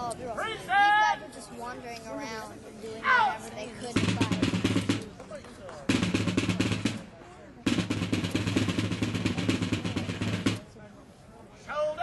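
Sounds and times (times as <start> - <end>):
field drum rolls: 3.9 - 10.7.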